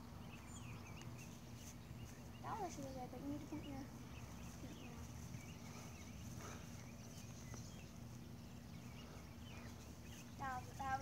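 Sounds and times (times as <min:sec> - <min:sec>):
faint continuous hum: 0:00.0 - 0:11.0
low steady rumble: 0:00.0 - 0:11.0.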